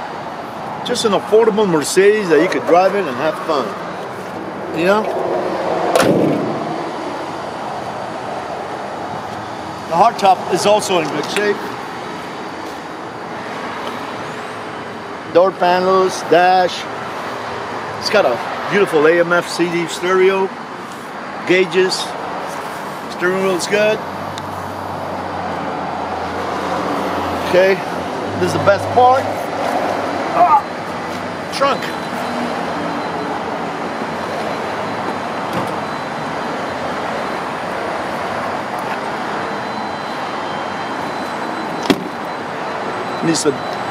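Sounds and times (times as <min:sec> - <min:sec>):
road traffic noise: 0:00.0 - 0:43.9.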